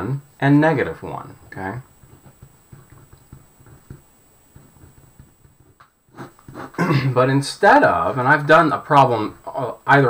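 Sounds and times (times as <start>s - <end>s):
pen tapping and writing on paper: 1.3s - 6.8s
man clearing his throat: 6.5s - 7.2s.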